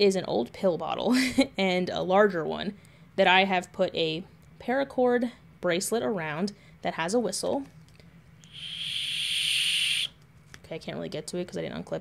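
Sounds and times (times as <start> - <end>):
breathy high whistle: 8.5 - 10.2.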